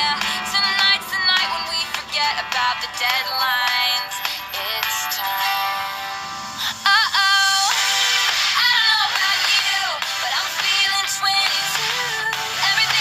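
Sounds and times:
woman singing: 0.0 - 6.0, 6.7 - 13.0
dance-pop song: 0.0 - 13.0.

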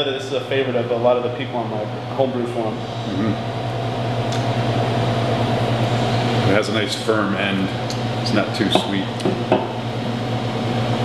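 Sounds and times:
low machine hum: 0.0 - 11.0.

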